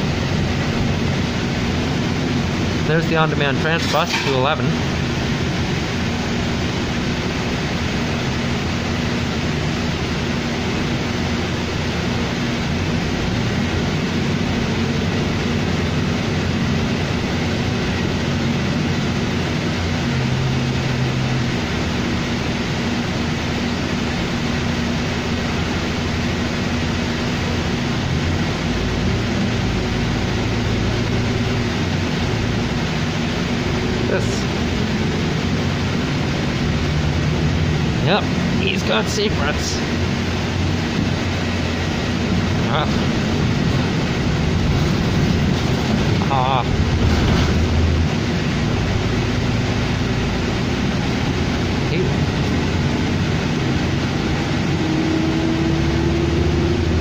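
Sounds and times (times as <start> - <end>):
bus engine drone and road noise: 0.0 - 57.0
constant low hum: 0.0 - 57.0.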